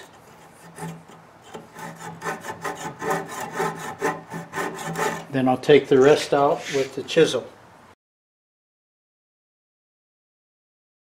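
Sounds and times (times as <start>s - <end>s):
handsaw cutting wood: 0.0s - 5.3s, 6.1s - 7.0s.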